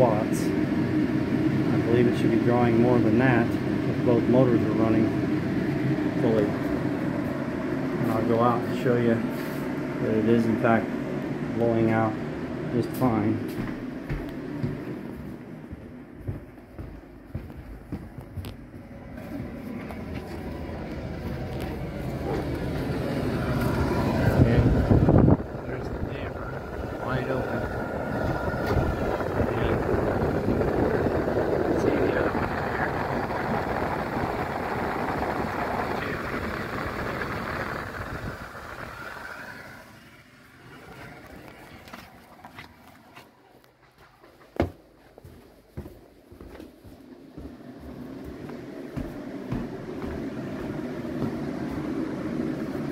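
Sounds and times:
low rumble: 0:03.3 - 0:42.3
rush of exhaust air: 0:09.1 - 0:11.5, 0:19.1 - 0:42.0.

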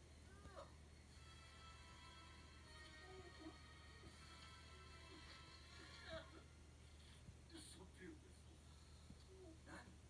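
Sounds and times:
soft sustained music: 0:00.9 - 0:06.7.

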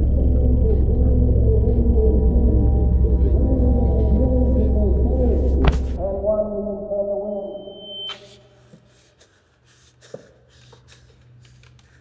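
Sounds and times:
electronic drone chord: 0:00.0 - 0:06.5
high ringing tone: 0:07.4 - 0:08.6.

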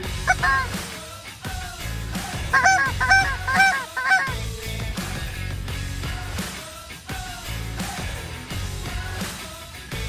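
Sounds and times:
goose honks: 0:00.3 - 0:00.7, 0:02.6 - 0:04.4.

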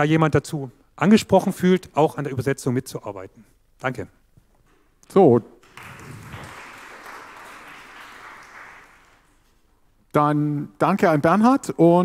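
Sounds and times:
audience applauding: 0:05.6 - 0:09.5.

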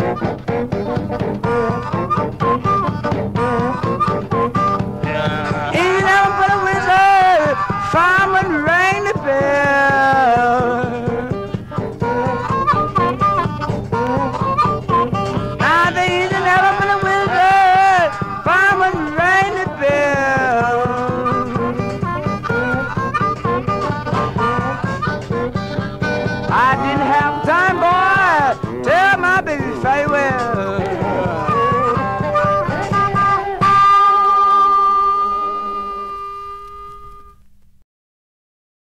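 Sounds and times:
steady drum beat: 0:00.0 - 0:34.0
blues guitar: 0:00.0 - 0:37.4
harmonica: 0:00.0 - 0:37.5.

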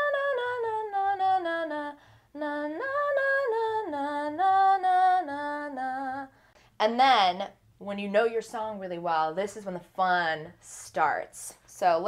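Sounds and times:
woman singing a scale: 0:00.0 - 0:07.3.

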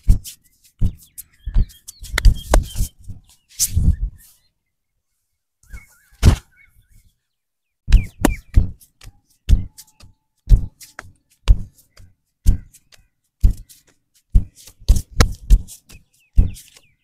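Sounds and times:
faint bird chirps: 0:00.1 - 0:14.7, 0:15.7 - 0:17.0.

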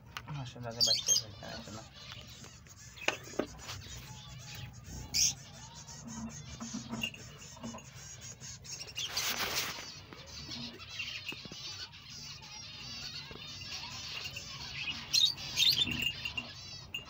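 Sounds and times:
finches chirping and twittering: 0:00.0 - 0:17.0
brief rustle: 0:09.0 - 0:10.1.

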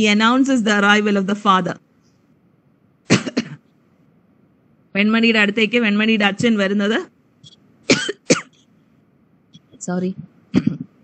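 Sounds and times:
person coughing: 0:03.1 - 0:03.7, 0:07.9 - 0:08.6, 0:10.5 - 0:11.0.

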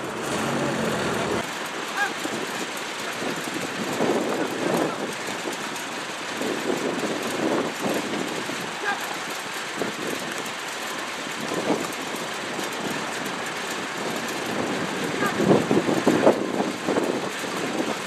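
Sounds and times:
outdoor background noise: 0:00.0 - 0:18.0.

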